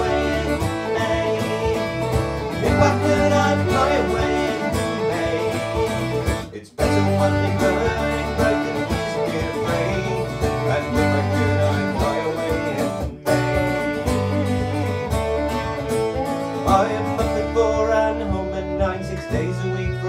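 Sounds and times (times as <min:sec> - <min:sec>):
fiddle: 0:00.0 - 0:20.0
mandolin: 0:00.0 - 0:20.0
strummed acoustic guitar: 0:00.0 - 0:20.0.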